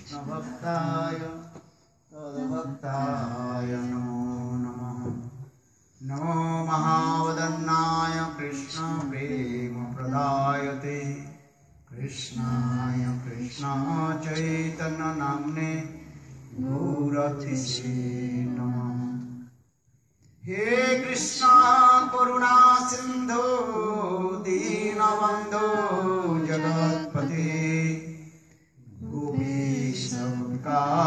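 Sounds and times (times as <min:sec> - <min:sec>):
man chanting devotional song: 0:06.0 - 0:19.4, 0:20.4 - 0:31.0.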